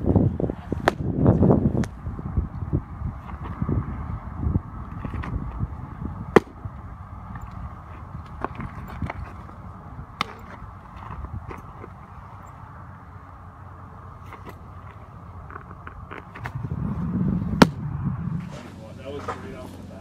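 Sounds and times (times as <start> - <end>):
steady low rumble: 0.0 - 20.0
baseball smacking into mitt: 0.8 - 1.1, 6.3 - 6.6, 17.5 - 17.8.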